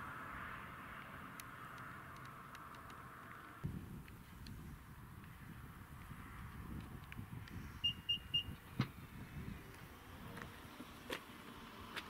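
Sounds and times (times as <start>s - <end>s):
short high beeps: 7.8s - 8.6s.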